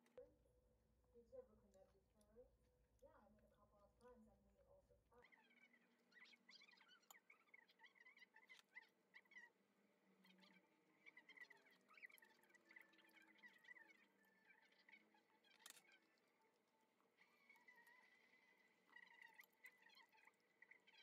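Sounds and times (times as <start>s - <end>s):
faint high chirping: 5.1s - 21.0s.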